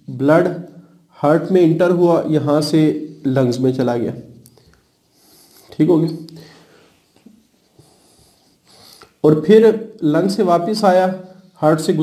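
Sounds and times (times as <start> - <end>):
man breathing: 6.4 - 7.1.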